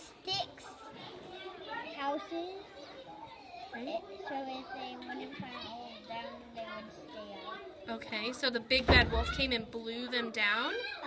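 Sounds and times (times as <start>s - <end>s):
children's voices chattering: 0.0s - 11.0s.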